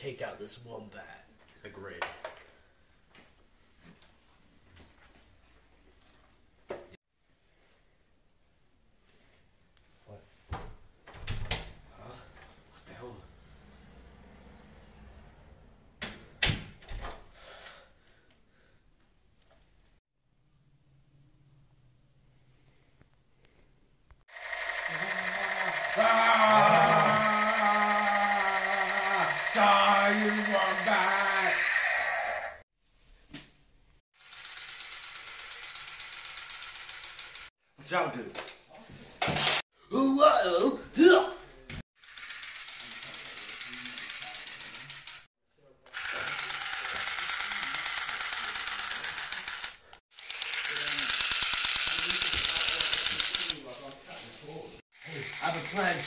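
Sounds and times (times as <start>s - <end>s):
recorded voice clip: 0.0s - 2.2s, 51.9s - 56.0s
toy gun high tone: 26.6s - 32.4s.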